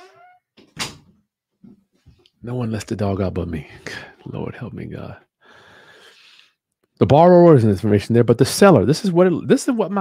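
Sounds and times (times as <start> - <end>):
dog whining: 0.0 - 0.4.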